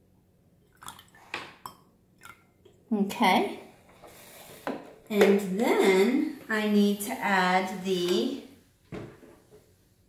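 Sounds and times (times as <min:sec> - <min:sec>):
milk pouring into a cup: 0:00.8 - 0:01.4.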